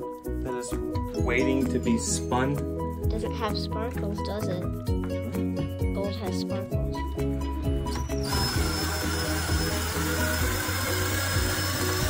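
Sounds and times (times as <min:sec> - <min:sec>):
background music: 0:00.0 - 0:12.0
power drill whining: 0:07.4 - 0:12.0.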